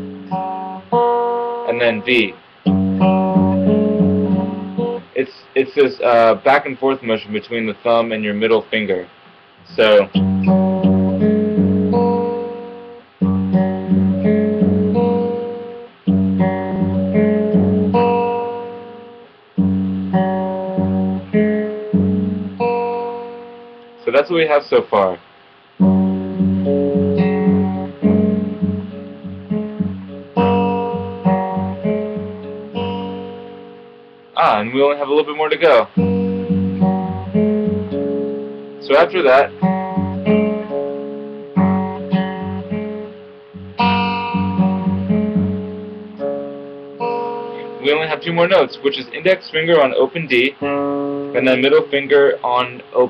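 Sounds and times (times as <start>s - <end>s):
fingerpicked acoustic guitar: 0.0s - 5.2s, 9.1s - 24.0s, 25.6s - 53.0s.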